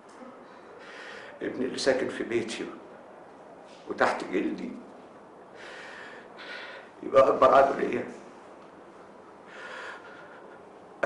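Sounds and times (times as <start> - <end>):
man breathing in: 0.7 - 1.4, 5.6 - 7.0, 9.4 - 10.9.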